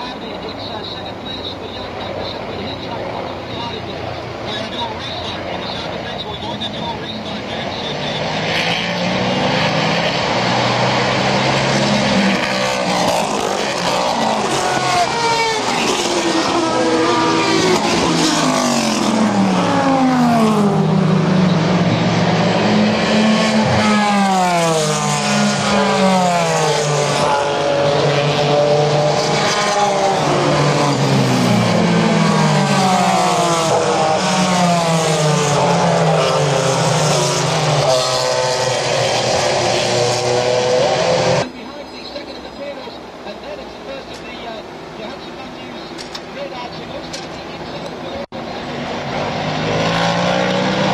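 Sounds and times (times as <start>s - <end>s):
race car engines passing: 0.0s - 50.9s.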